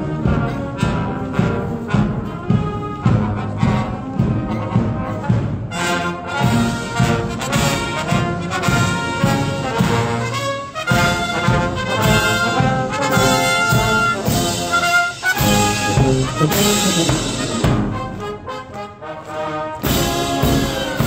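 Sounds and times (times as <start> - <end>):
steady drum beat: 0.0 - 18.6, 19.8 - 21.0
brass marching band playing: 0.0 - 21.0.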